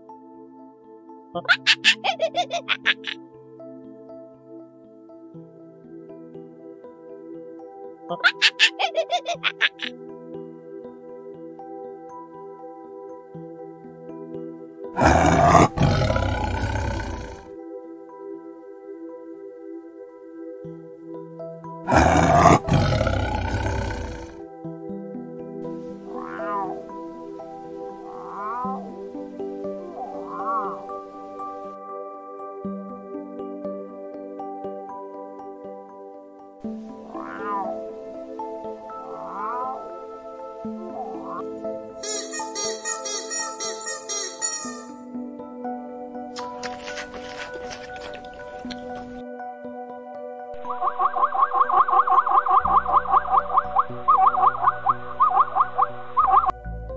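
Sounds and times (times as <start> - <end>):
soft music with held tones: 0.0 - 56.9
tiger roaring: 15.0 - 17.5, 21.9 - 24.4
cat meowing: 26.2 - 26.8.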